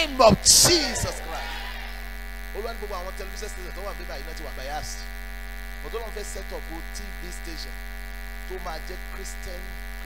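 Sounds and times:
man speaking: 0.0s - 5.1s, 5.8s - 7.7s, 8.5s - 9.7s
electrical mains hum: 0.0s - 10.0s.

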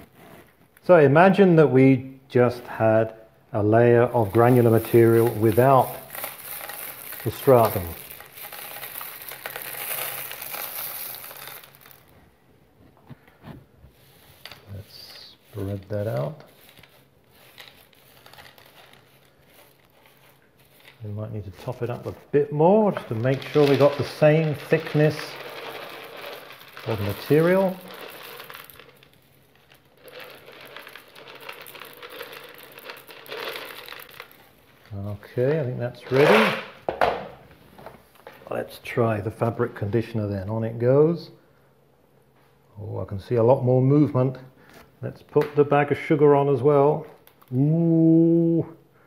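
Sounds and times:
dried chickpeas rattling into glass dish: 4.2s - 12.1s, 22.9s - 34.5s, 36.0s - 36.8s.

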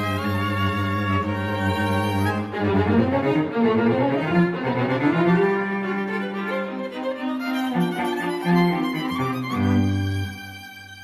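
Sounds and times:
string quartet playing: 0.0s - 11.0s.

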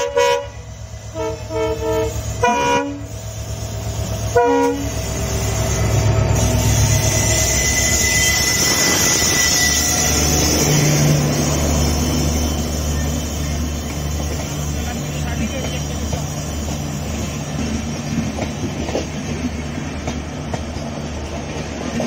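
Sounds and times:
train coaches rumbling past: 0.0s - 22.0s.

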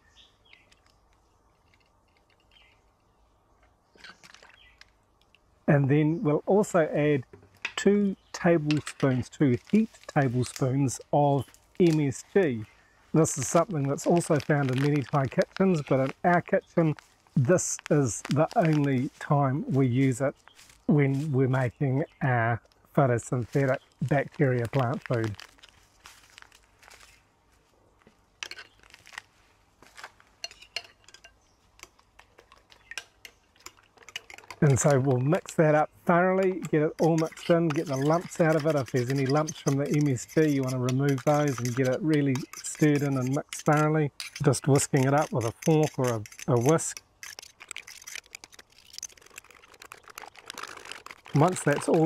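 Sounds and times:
fork whisking eggs in a bowl: 31.8s - 35.7s, 36.4s - 52.0s.

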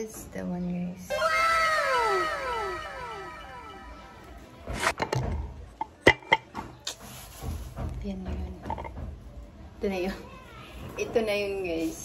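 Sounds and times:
echoing descending cry effect: 1.1s - 4.4s.

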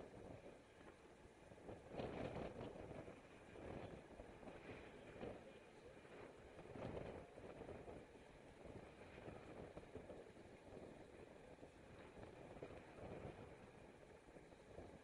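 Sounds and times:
wind rumble on microphone: 0.0s - 15.0s.

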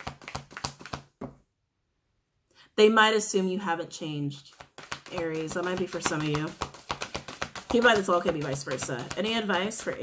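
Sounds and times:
cards being shuffled: 0.0s - 1.1s, 4.5s - 10.0s.

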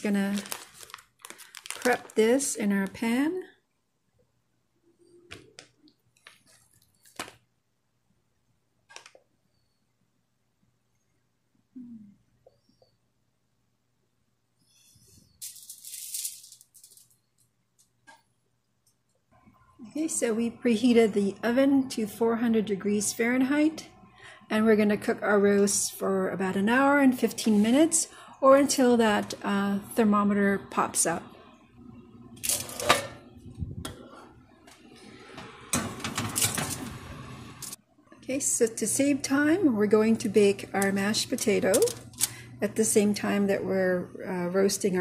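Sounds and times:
aluminium foil crinkling: 0.0s - 3.1s, 15.4s - 17.4s, 41.1s - 42.4s.

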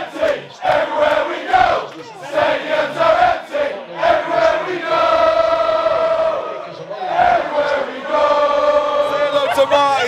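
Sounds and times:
crowd chanting in unison: 0.0s - 10.0s.

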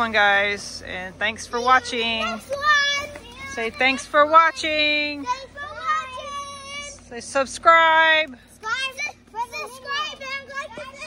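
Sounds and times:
blower fans humming: 0.0s - 11.0s
children chattering and calling out: 0.0s - 11.0s.

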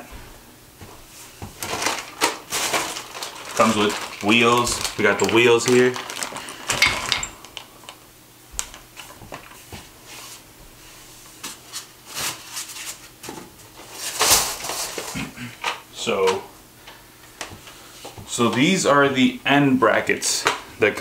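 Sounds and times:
packing paper rustling: 1.2s - 8.0s, 11.3s - 15.3s.

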